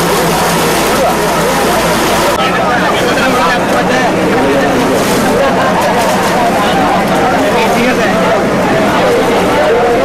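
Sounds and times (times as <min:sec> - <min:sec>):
crowd voices: 0:00.0 - 0:10.0
excavator engine running: 0:00.0 - 0:10.0.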